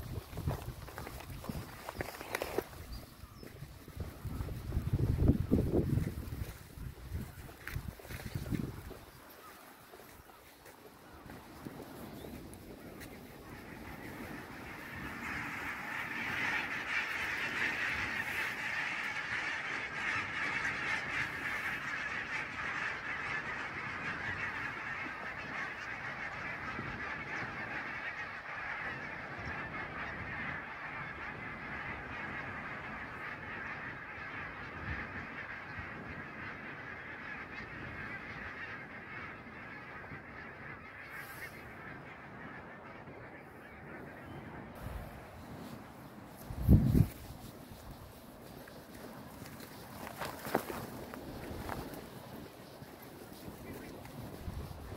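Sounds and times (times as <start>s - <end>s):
geese honking in flight: 0.0s - 54.9s.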